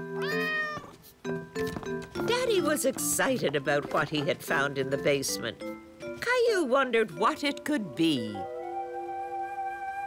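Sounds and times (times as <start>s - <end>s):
cat meowing: 0.2s - 0.9s.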